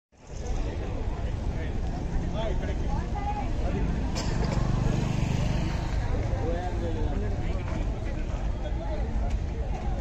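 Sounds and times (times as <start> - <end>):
people talking: 0.2 - 10.0.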